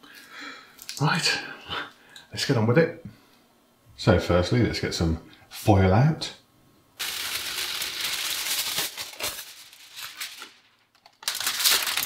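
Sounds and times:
foil rustling and crinkling: 7.0 - 12.0.

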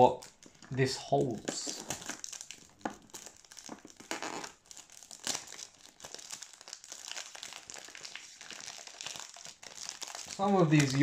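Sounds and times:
cellophane wrapping crinkling: 0.0 - 11.0.

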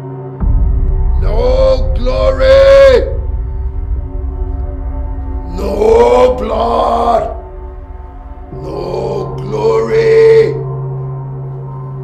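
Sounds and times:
deep gong-like drone: 0.0 - 11.8
loud vocal cry: 1.2 - 3.2, 5.5 - 7.5, 8.5 - 10.7.

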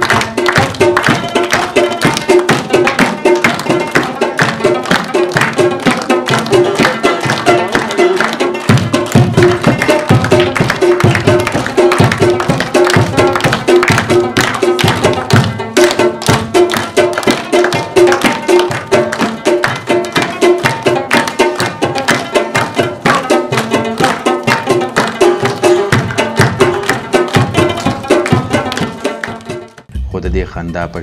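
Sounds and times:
hand drumming on plastic bucket: 0.0 - 29.8
hand clapping: 0.0 - 29.9
plucked rubab melody: 0.0 - 31.0.

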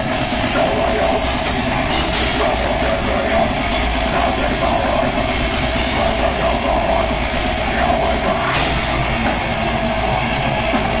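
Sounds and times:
distorted electric guitars: 0.0 - 11.0
fast drum and cymbal hits: 0.0 - 11.0.

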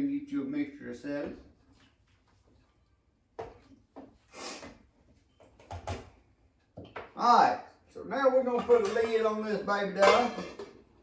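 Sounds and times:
cookware knocks and clatters: 5.3 - 7.2, 8.4 - 11.0.

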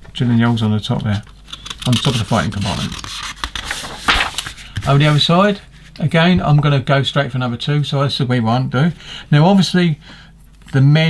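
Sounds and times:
paper page rustling: 1.5 - 6.0.

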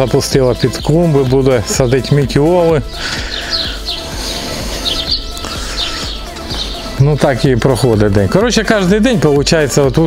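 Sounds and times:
quiet background music: 0.0 - 10.0
small birds chirping: 0.0 - 10.0.

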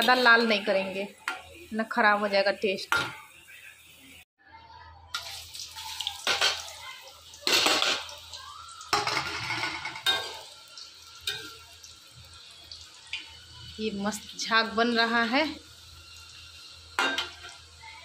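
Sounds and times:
oil bubbling and sizzling: 0.0 - 4.2, 5.1 - 18.0.

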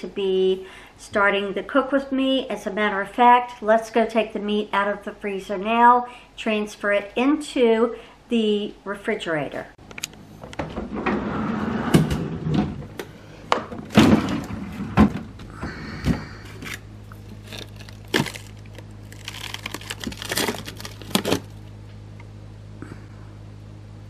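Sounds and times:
steady low hum: 0.0 - 24.0
freezer drawer pulled open: 10.6 - 12.9
plastic bags crinkling: 16.6 - 21.6
frozen packages knocking: 17.3 - 21.6.

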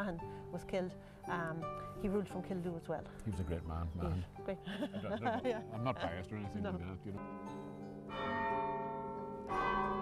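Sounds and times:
tower bells ringing: 7.1 - 10.0.

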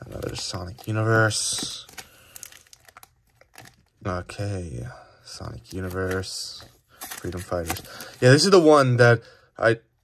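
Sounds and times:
plastic sleeves crinkling: 0.0 - 4.4, 5.3 - 8.8.

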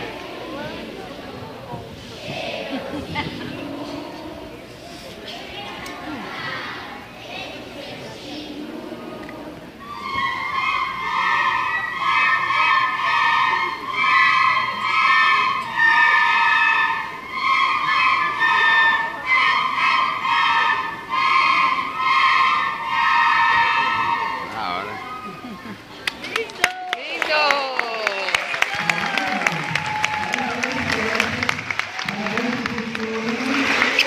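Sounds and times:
children playing wind instruments: 0.0 - 25.8.

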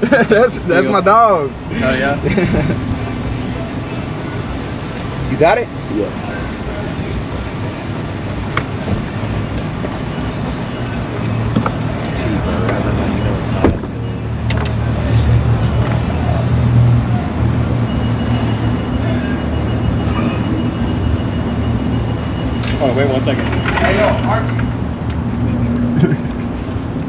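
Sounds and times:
car idling hum: 0.0 - 27.0
thin steady high tone: 17.1 - 24.7.

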